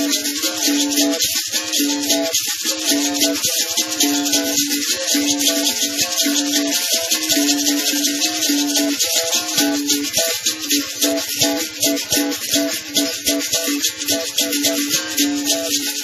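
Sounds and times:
musical bows struck with sticks: 0:00.0 - 0:16.0.

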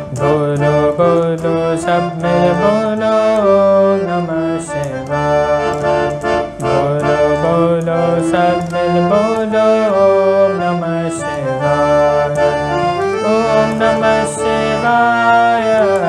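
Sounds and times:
harmonium melody with chords: 0:00.0 - 0:16.0.

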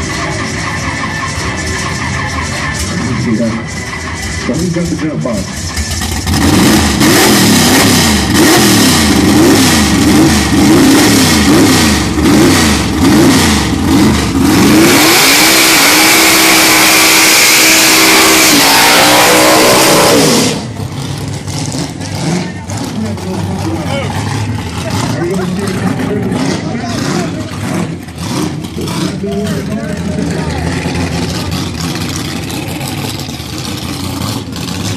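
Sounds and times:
car engine revving: 0:00.0 - 0:34.9
tyres screeching: 0:11.4 - 0:34.9.

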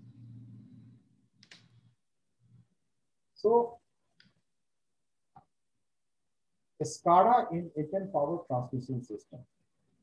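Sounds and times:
faint low hum: 0:00.0 - 0:03.9
computer click: 0:01.4 - 0:01.8.

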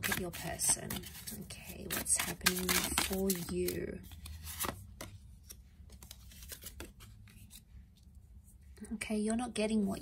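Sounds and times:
cards clicking and rustling: 0:00.0 - 0:07.6.

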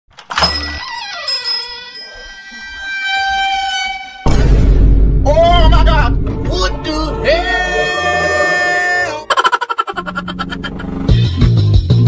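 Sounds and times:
ringing synthetic tones: 0:00.3 - 0:04.3
low thud: 0:04.3 - 0:06.5.

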